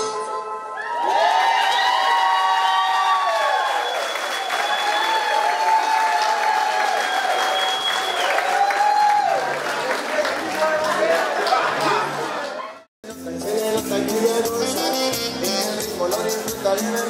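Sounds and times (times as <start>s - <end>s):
high held whoops: 0.7s - 9.5s
crowd applauding and cheering: 0.7s - 12.9s.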